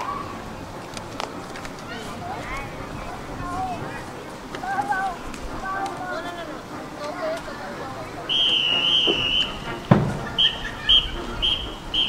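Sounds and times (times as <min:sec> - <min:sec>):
whistle blasts: 0:08.2 - 0:12.0.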